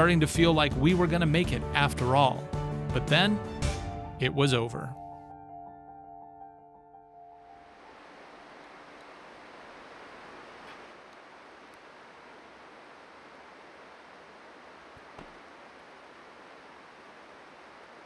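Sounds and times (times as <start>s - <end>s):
faint outdoor ambient hiss: 0.0s - 5.0s, 6.9s - 18.0s.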